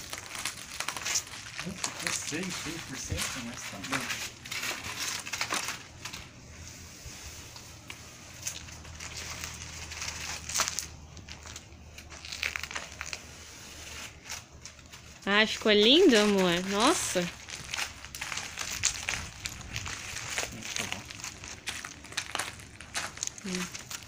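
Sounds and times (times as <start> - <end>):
masking tape peeling: 0.0 - 24.0
tape crinkling in hands: 0.0 - 24.0.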